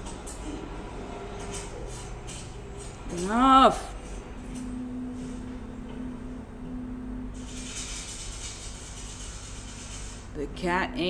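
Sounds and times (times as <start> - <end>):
low held tone: 0.0 - 8.2.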